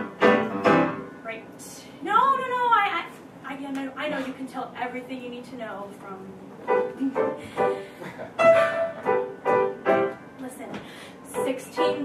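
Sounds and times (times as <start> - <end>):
piano accompaniment: 0.0 - 1.3, 6.6 - 10.6, 11.3 - 12.0
woman singing: 11.3 - 12.0.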